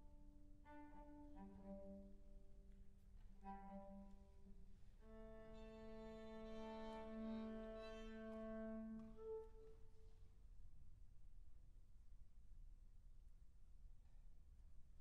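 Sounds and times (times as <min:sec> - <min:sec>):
violin: 0:00.0 - 0:10.0
clarinet: 0:00.0 - 0:10.1
cello: 0:00.0 - 0:10.3.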